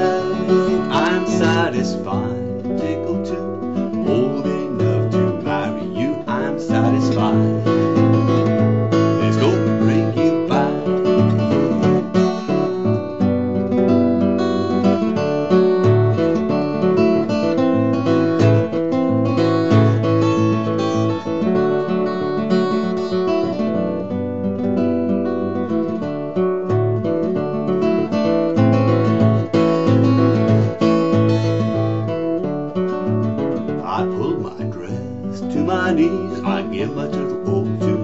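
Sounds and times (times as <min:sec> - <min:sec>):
fingerpicked acoustic guitar: 0:00.0 - 0:38.0.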